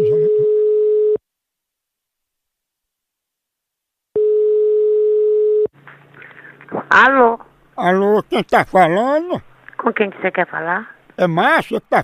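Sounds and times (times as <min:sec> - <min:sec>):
telephone ringback beep: 0:04.2 - 0:05.7.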